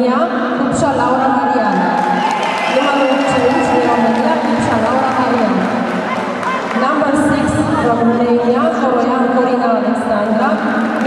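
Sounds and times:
audience talking and calling out: 1.1s - 8.7s.

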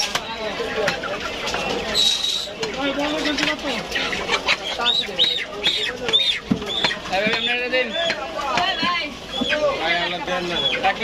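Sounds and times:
birds chirping: 0.2s - 11.0s.

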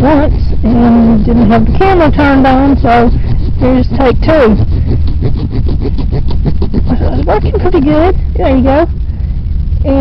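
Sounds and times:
saw rasping through root: 0.0s - 7.6s
low rumble: 0.0s - 10.0s.

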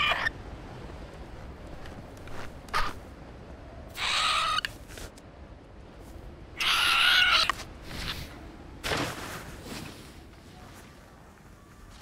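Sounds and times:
cartoon bird calls: 3.9s - 4.7s.

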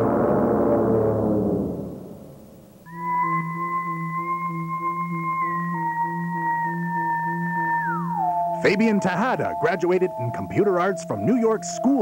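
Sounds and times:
synthesized drone: 0.0s - 12.0s.

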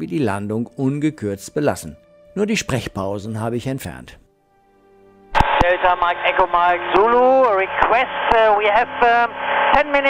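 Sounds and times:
radio speech: 5.4s - 10.0s.

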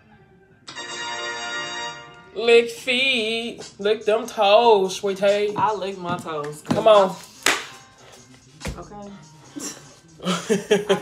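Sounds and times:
sharp hand clap: 7.4s - 7.8s.

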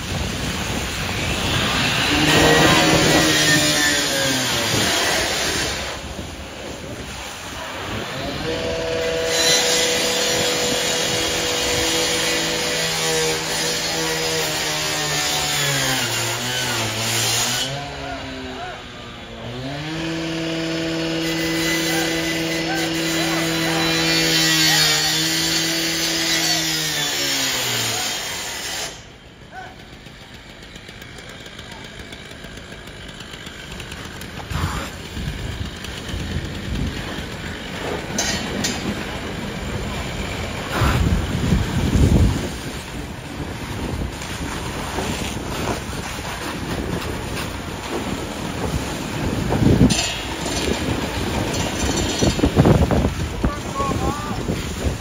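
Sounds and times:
wind noise on microphone: 0.0s - 14.4s, 34.5s - 55.0s
fire hoses spraying water: 0.0s - 55.0s
cut-off saw engine running: 0.8s - 6.1s, 7.6s - 43.1s.

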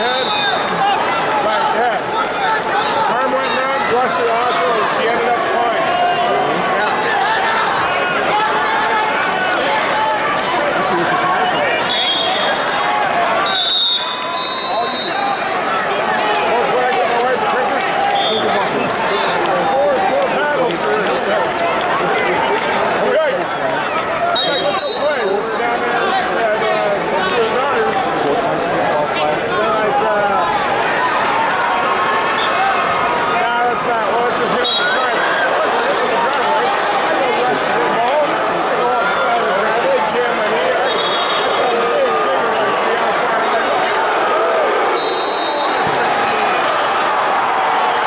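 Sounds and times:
crowd chatter in large hall: 0.0s - 48.0s.

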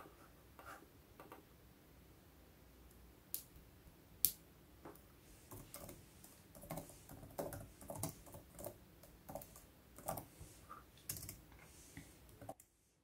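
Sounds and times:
keyboard typing clicks: 6.6s - 10.3s, 11.1s - 11.4s.

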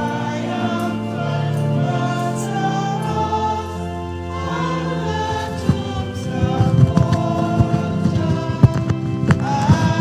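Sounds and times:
congregation singing a hymn: 0.0s - 10.0s
organ chords: 0.0s - 10.0s.

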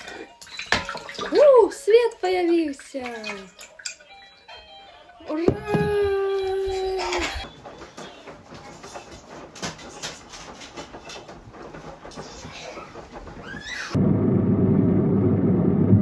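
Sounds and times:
woman cheering: 5.3s - 7.3s
small knocks: 5.4s - 6.5s.

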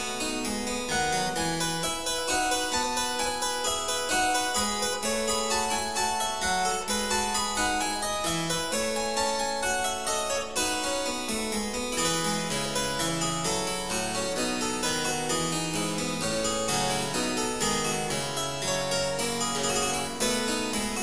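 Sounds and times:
harpsichord playing: 0.0s - 21.0s.

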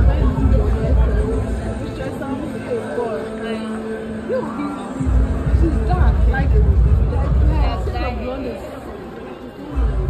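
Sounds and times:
music: 0.0s - 10.0s
voices chattering: 0.0s - 10.0s.

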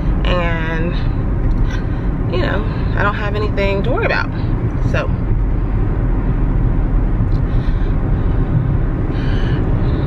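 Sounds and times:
car cabin road rumble: 0.0s - 10.0s.

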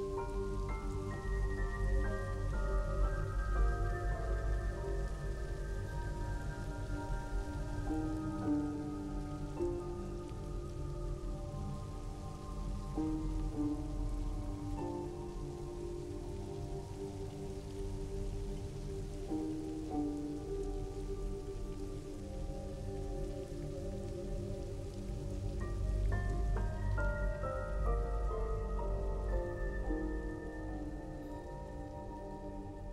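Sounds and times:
slow film score: 0.0s - 32.9s
steady rain: 0.0s - 32.9s.

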